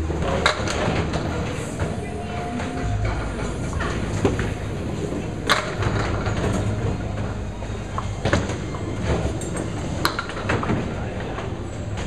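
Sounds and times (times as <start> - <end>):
bowling balls rolling on wooden lanes: 0.0 - 12.0
balls striking pins: 8.0 - 10.9.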